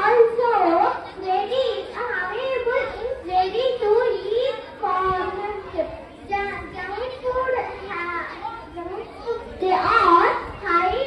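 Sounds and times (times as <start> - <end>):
girl speaking into a microphone: 0.0 - 11.0.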